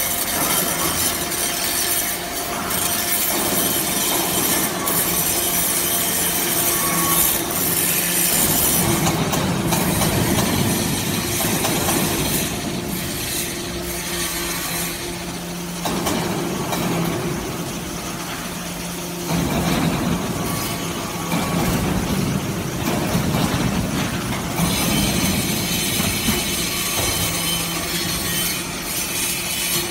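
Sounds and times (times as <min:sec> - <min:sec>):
hydraulic pump motor hum: 0:00.0 - 0:29.9
rattling scraping mechanical noise: 0:00.0 - 0:29.9.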